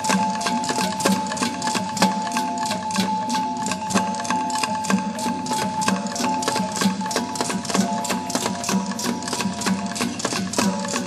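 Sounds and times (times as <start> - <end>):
gong ensemble music: 0.0 - 11.0.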